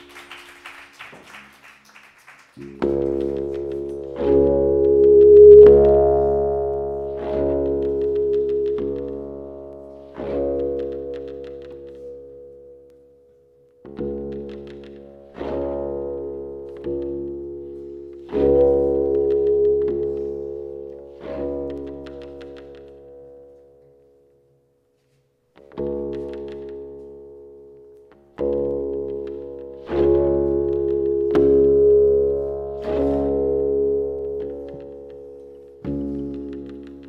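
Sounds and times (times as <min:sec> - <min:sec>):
electronic instrument sustained notes: 0:02.6 - 0:10.7
sustained electronic tone: 0:04.8 - 0:06.7.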